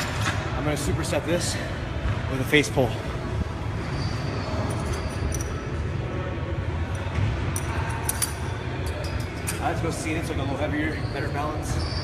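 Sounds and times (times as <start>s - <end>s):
low gym background hum: 0.0s - 12.0s.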